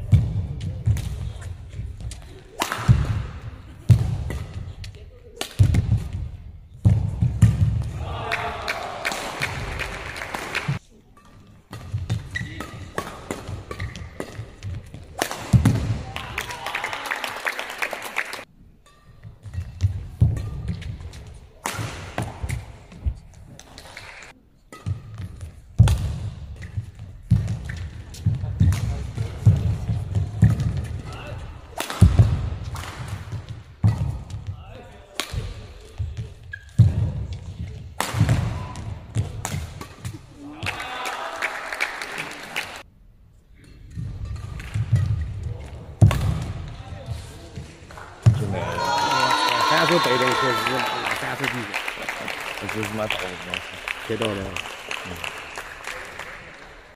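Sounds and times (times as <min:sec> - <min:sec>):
racket striking shuttlecock: 0:00.1 - 0:10.5, 0:11.2 - 0:16.0, 0:18.8 - 0:34.5, 0:35.1 - 0:40.2.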